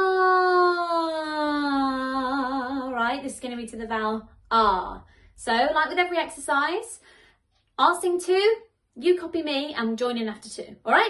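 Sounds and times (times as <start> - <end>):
woman singing falling ah: 0.0 - 3.0.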